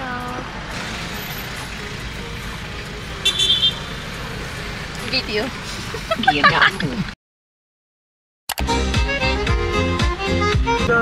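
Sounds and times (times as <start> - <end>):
car engine and road rumble: 0.0 - 7.2.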